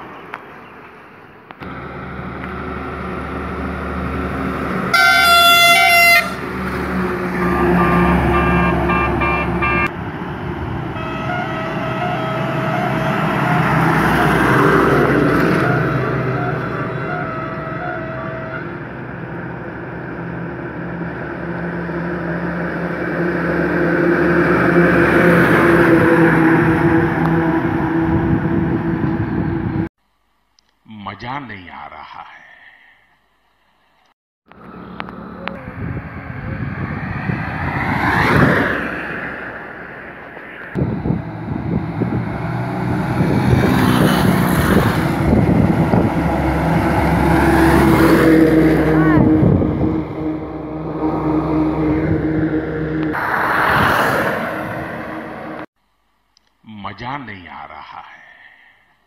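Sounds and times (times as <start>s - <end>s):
trucks passing with diesel engines: 0.0s - 29.9s, 34.5s - 55.7s
loud truck horn blast: 1.7s - 10.0s, 10.9s - 19.2s, 44.2s - 53.4s
horn beeping in rapid pulses: 4.9s - 6.5s, 7.3s - 9.9s, 10.9s - 14.4s, 15.5s - 18.8s
horn playing changing notes: 4.9s - 9.9s, 10.9s - 14.4s, 15.5s - 18.9s.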